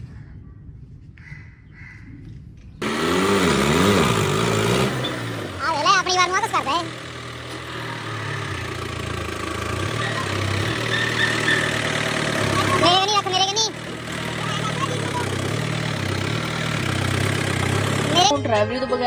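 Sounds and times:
tractor diesel engine idling: 2.8 - 18.4.

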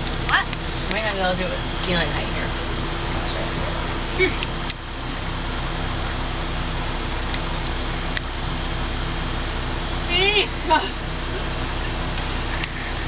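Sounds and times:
steady mechanical hum: 0.0 - 13.0.

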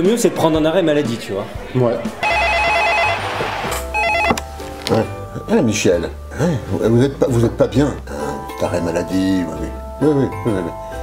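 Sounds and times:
background music: 0.0 - 11.0
telephone ringing with warbling trill: 2.2 - 3.3, 3.9 - 4.4.

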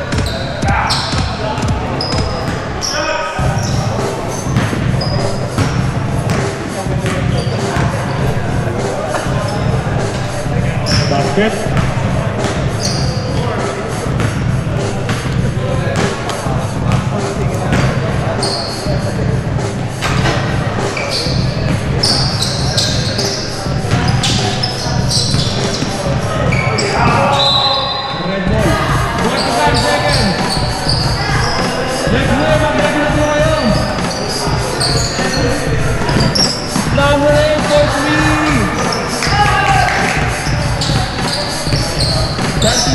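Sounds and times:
background music with low beat: 0.0 - 2.8, 3.4 - 27.4, 28.4 - 42.9
basketball bouncing on hardwood floor: 4.5 - 6.4.

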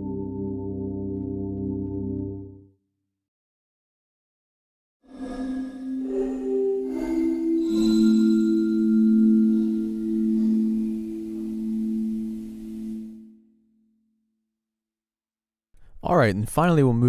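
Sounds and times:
soft bell-like keyboard notes: 5.2 - 13.4.

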